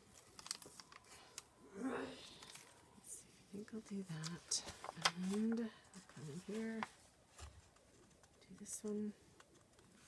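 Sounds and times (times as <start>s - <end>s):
paper crackles and clicks: 0.0s - 1.5s, 4.2s - 10.0s.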